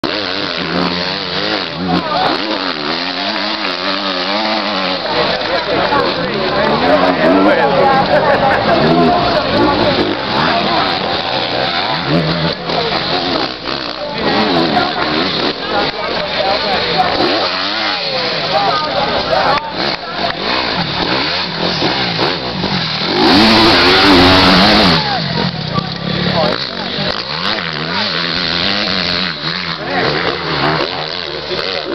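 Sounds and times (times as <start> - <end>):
motorcycle engine revving hard: 0.0 - 31.9.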